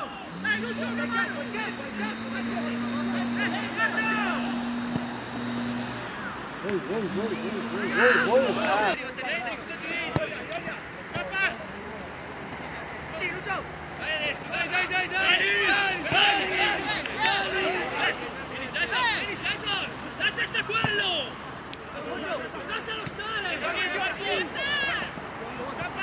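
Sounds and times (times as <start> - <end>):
men shouting and calling: 0.0 - 26.0.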